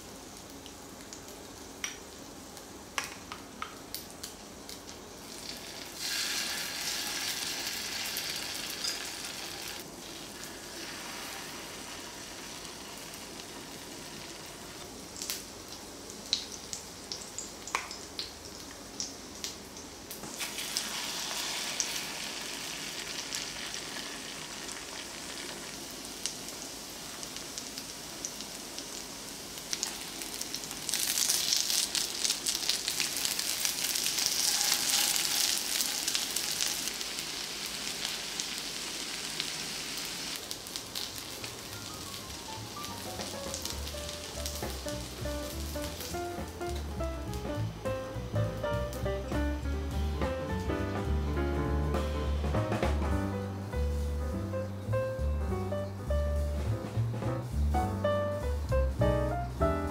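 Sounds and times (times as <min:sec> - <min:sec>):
pancakes sizzling in oil: 0:00.0 - 0:48.3.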